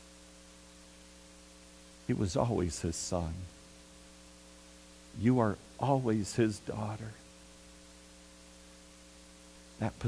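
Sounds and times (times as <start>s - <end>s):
electrical mains hum: 0.0s - 10.0s
light hiss: 0.0s - 10.0s.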